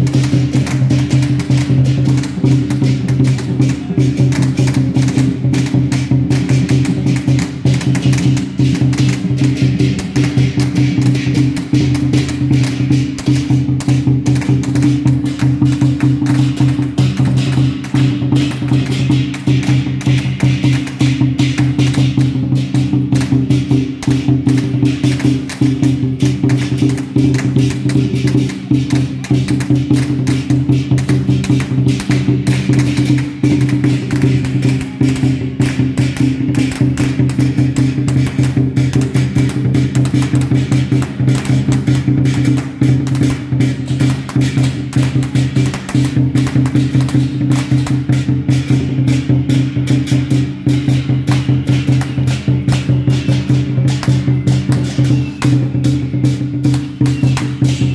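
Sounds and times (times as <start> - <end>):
drums and cymbals beat: 0.0 - 57.9.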